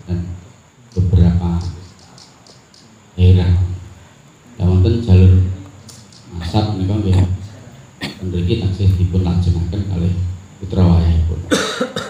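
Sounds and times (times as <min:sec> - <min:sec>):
man talking: 0:00.0 - 0:11.6
sharp cough: 0:08.0 - 0:08.3, 0:11.5 - 0:12.0.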